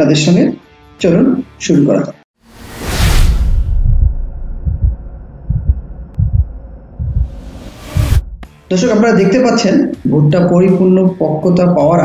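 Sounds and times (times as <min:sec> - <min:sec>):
deep bass thumps: 0:03.5 - 0:08.5.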